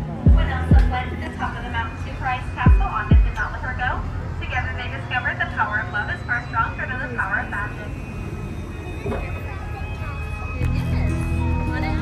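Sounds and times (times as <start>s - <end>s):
boat low hum: 0.0s - 12.0s
indistinct talking: 0.0s - 12.0s.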